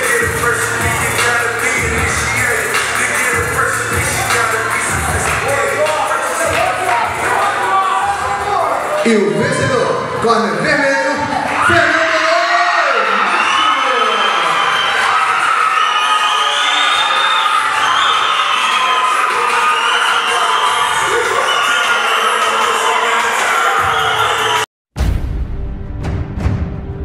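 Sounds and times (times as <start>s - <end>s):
crowd cheering and shouting: 0.0s - 24.7s.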